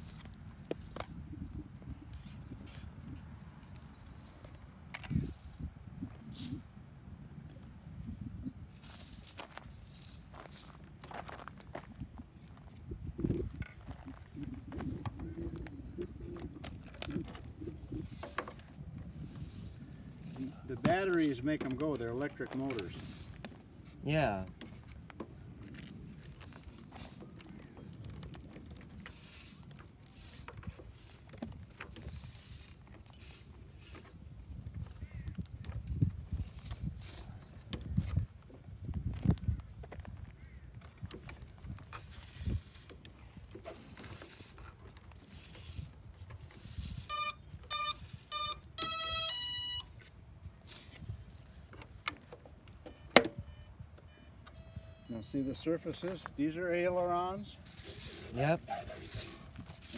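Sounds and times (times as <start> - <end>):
handling noise and small knocks: 10.3 - 19.5, 20.2 - 46.8, 49.9 - 54.6
motor arming beeps: 47.0 - 50.0, 52.9 - 55.2.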